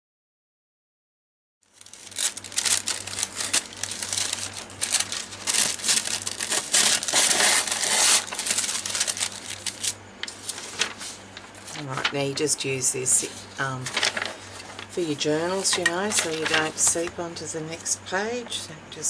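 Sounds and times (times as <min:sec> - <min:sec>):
paper crinkling and rustling: 0:01.7 - 0:12.4, 0:13.2 - 0:17.1
low steady hum: 0:01.7 - 0:19.0.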